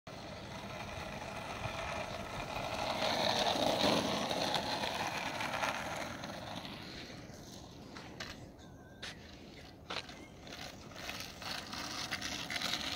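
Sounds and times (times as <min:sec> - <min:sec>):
skateboard wheels rolling on asphalt: 0:00.1 - 0:12.9.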